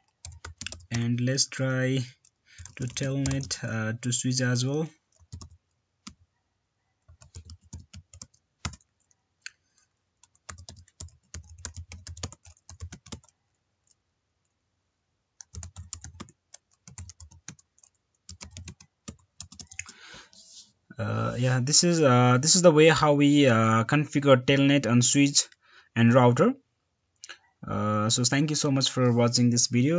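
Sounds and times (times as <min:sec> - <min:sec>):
typing on computer keyboard: 0:00.0 - 0:01.0, 0:02.2 - 0:03.6, 0:05.1 - 0:06.2, 0:07.0 - 0:09.2, 0:10.2 - 0:14.0, 0:15.4 - 0:20.0.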